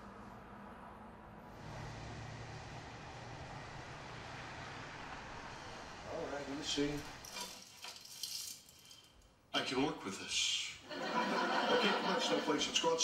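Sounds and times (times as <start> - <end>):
distant city traffic: 0.0 - 13.0.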